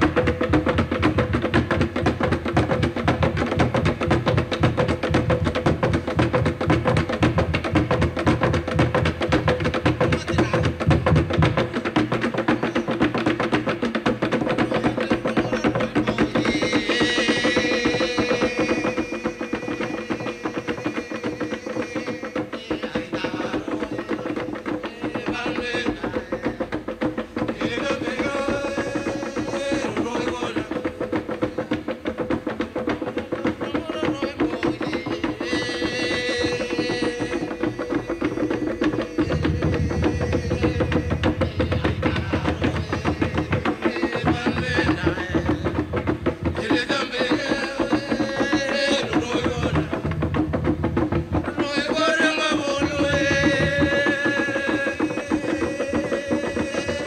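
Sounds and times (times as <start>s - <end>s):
deeper drum sound: 0.0s - 57.0s
log drums struck: 0.0s - 57.0s
bursts of voices: 10.0s - 10.9s.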